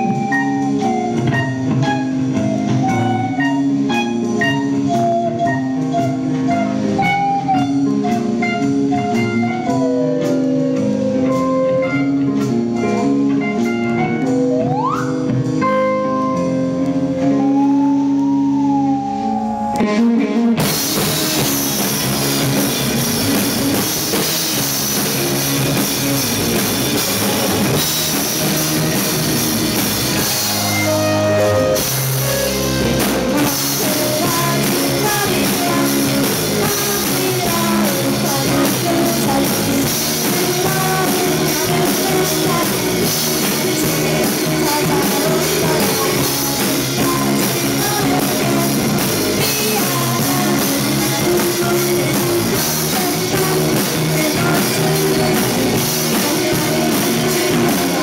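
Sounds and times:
drum kit beat: 0.0s - 58.0s
electric guitars: 0.0s - 58.0s
keyboard: 0.0s - 58.0s
rock band playing: 0.0s - 58.0s.

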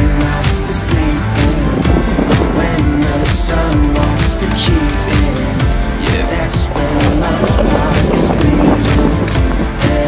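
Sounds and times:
pop-rock song: 0.0s - 10.0s
scooter wheels rolling on concrete: 1.0s - 10.0s.

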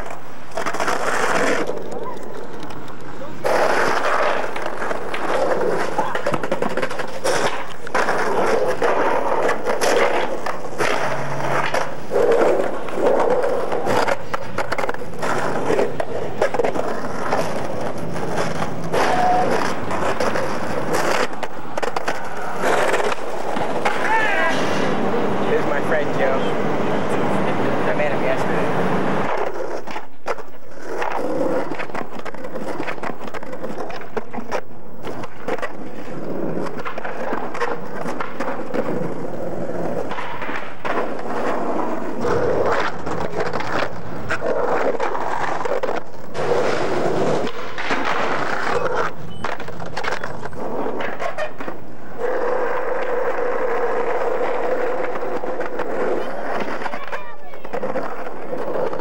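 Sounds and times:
skateboard clacks: 0.0s - 59.0s
skateboard wheels rolling on pavement: 0.0s - 59.0s.

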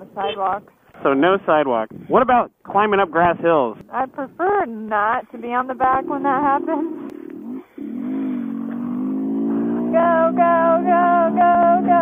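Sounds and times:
motorcycle engine pulling uphill: 4.5s - 12.0s.

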